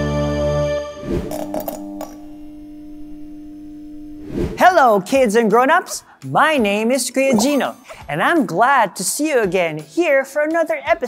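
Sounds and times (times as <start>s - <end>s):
low electronic hum: 1.2s - 4.6s.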